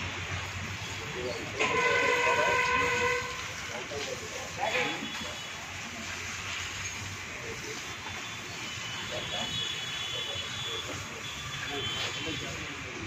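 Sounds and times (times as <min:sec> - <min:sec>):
hose water spraying: 0:00.0 - 0:13.0.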